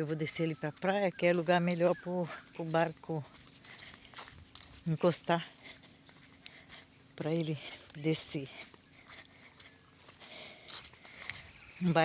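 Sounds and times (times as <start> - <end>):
footsteps on wet dirt: 0.0 - 12.0
high insect drone: 0.0 - 12.0.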